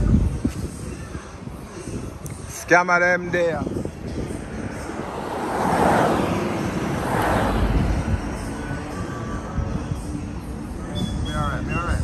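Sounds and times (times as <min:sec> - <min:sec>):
road and wind noise in a car: 0:00.0 - 0:12.0.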